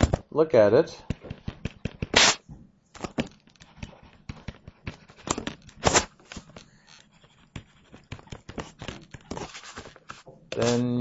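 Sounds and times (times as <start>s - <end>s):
stylus tapping on tablet screen: 1.1s - 2.2s, 3.2s - 5.1s, 7.5s - 9.3s.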